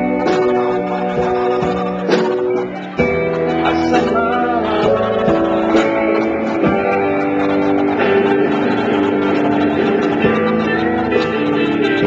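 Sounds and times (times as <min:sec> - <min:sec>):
guitars playing chords: 0:00.0 - 0:12.0
live rock band playing: 0:00.0 - 0:12.0.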